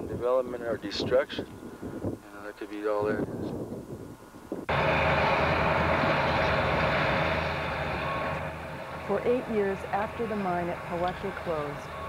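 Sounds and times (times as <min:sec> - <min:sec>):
bulldozer diesel engine running: 0:04.7 - 0:12.0.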